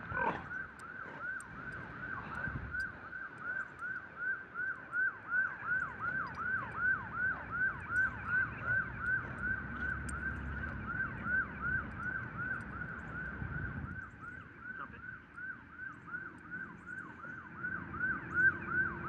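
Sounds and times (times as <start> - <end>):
emergency siren yelping: 0.0 - 19.0.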